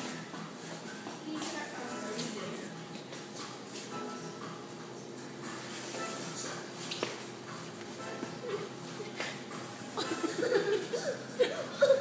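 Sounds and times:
shoes shuffling on tile floor: 0:00.0 - 0:04.0, 0:05.5 - 0:09.4
faint music: 0:00.0 - 0:12.0.

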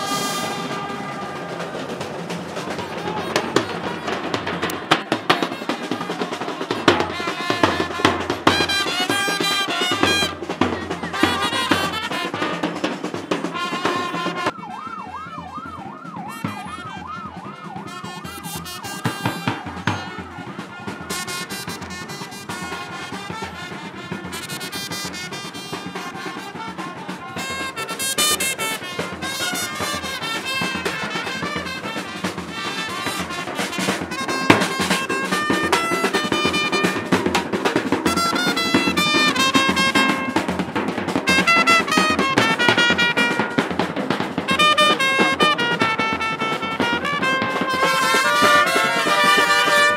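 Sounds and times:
vehicle siren wailing: 0:00.0 - 0:04.8, 0:13.9 - 0:24.0, 0:25.0 - 0:33.4
brass band playing: 0:00.0 - 0:49.9
bass drum beats: 0:00.5 - 0:26.2.

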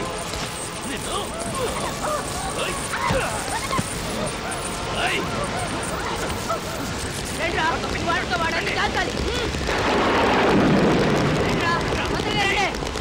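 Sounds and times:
women shrieking and crying: 0:01.0 - 0:07.1
rain pouring: 0:04.7 - 0:13.0.

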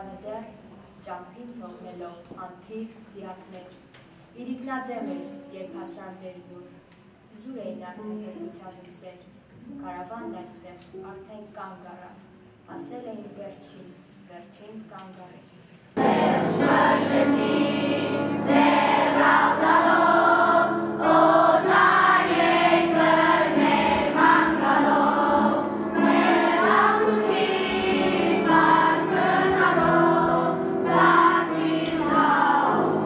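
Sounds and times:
children's choir singing: 0:16.0 - 0:33.0.

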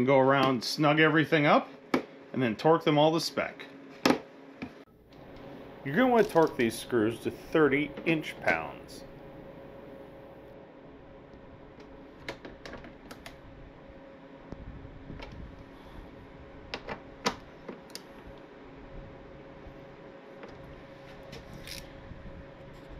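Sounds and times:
faint steady hum: 0:00.0 - 0:22.9.

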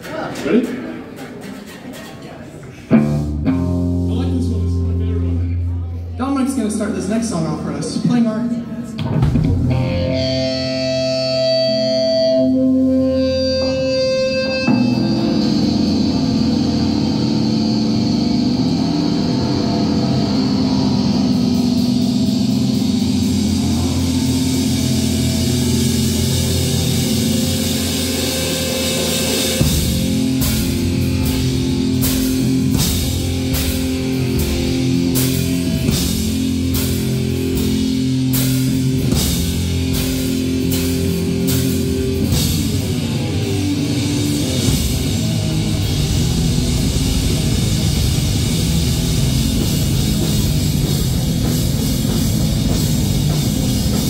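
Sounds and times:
drum kit beat: 0:02.9 - 0:04.6, 0:09.0 - 0:54.0
ringing electric guitar and bass: 0:02.9 - 0:06.2, 0:08.6 - 0:54.0.

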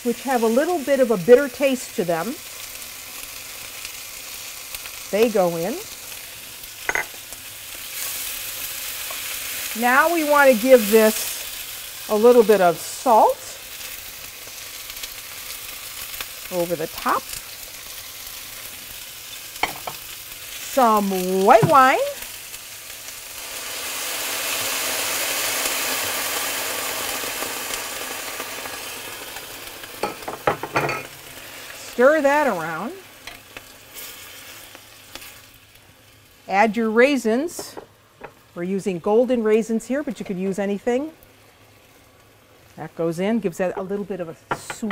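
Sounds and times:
vegetables sizzling in oil: 0:00.0 - 0:44.9.

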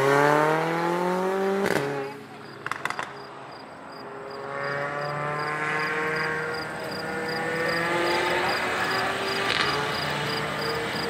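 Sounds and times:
car engine accelerating: 0:00.0 - 0:11.0.

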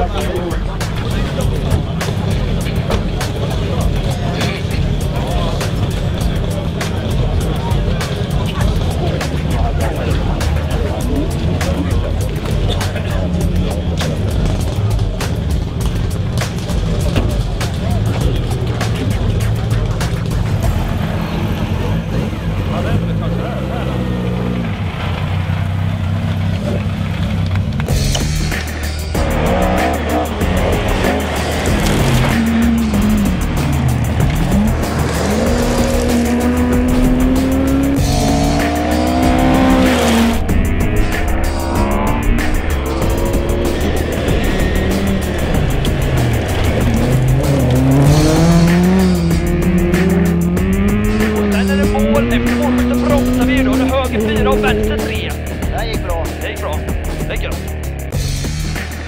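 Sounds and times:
background music: 0:00.0 - 0:25.0, 0:27.8 - 0:59.0
rally car engine at full throttle: 0:00.0 - 0:59.0.

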